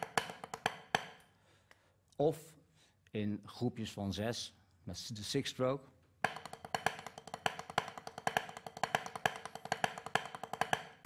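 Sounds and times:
drumsticks on a practice pad: 0.0 - 1.3, 6.2 - 11.0.

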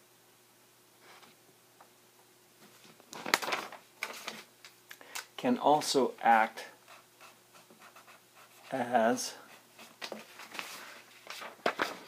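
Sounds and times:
paper rustling: 2.6 - 4.5, 9.9 - 12.0
paper crinkles: 3.2 - 4.5, 10.0 - 12.0.

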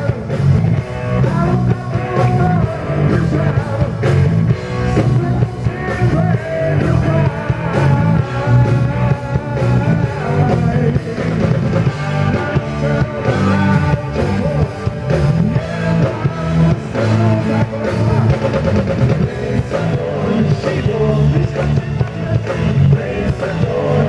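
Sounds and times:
bass guitar: 0.0 - 24.0
drum kit: 0.0 - 24.0
electric guitar: 0.0 - 24.0
male lead vocals: 0.0 - 24.0.

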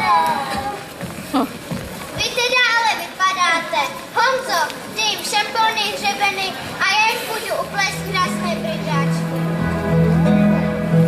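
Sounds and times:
children speaking: 0.0 - 1.0, 2.1 - 11.0.

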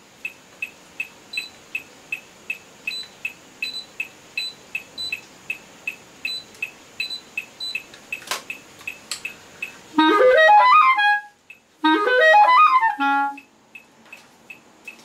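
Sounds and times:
electronic metronome beeping: 0.2 - 15.0.

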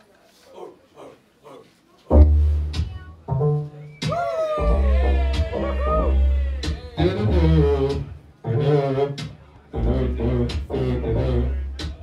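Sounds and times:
deep bass: 2.1 - 3.8, 4.6 - 12.0
hip-hop backing track: 2.1 - 12.0.

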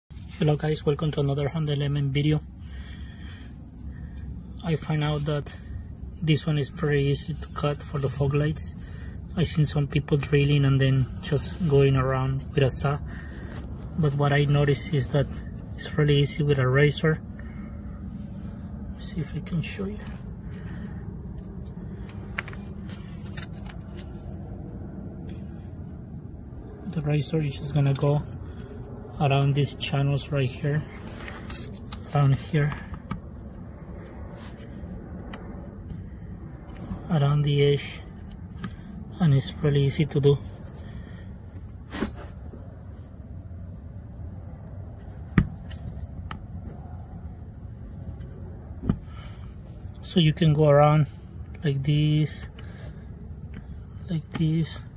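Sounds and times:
crickets chirping: 0.1 - 54.9
low steady rumble: 0.1 - 54.9.

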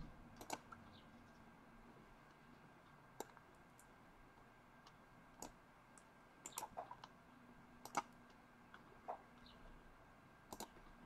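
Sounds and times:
faint computer mouse clicks: 0.4 - 1.4, 7.8 - 8.8, 10.5 - 10.8.

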